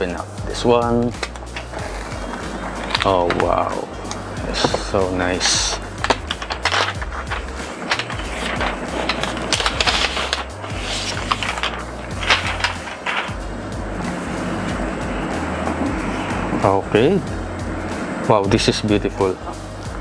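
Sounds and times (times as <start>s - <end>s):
background music with bass: 0.0s - 20.0s
plastic wrap crinkling: 1.2s - 3.4s, 4.5s - 13.4s.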